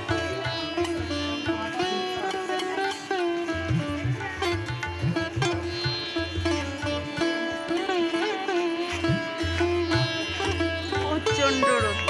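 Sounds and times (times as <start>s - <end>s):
plucked-string melody: 0.0s - 12.0s.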